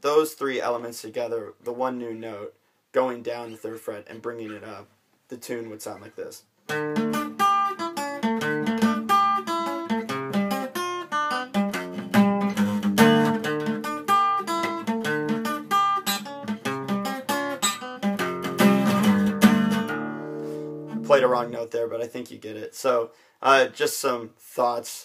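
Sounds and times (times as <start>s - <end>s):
acoustic guitar riff: 6.6s - 21.7s.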